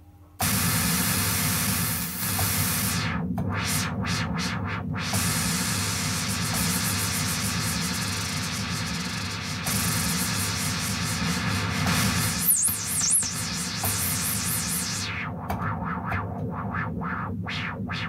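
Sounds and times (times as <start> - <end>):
synthesizer white-noise hiss: 0.4 - 18.0.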